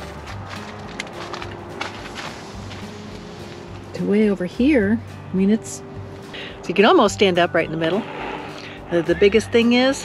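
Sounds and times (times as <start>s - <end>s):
soft music with bass line: 0.0s - 10.0s.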